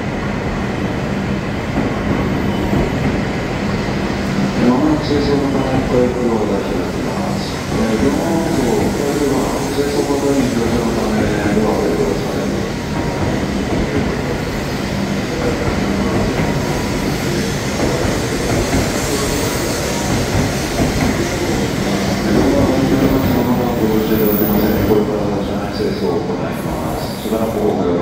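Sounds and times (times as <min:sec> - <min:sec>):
train rolling slowly: 0:00.0 - 0:28.0.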